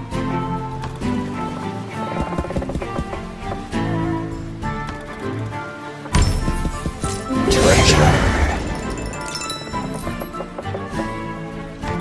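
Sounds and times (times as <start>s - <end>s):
looping game music: 6.2s - 11.8s.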